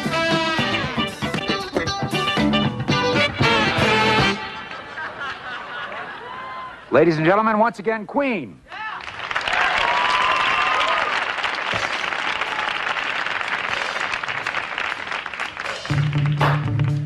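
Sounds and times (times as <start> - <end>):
band playing low bass notes: 0.0 - 4.7, 15.9 - 17.0
audience applauding and cheering: 5.8 - 6.9, 8.7 - 17.0.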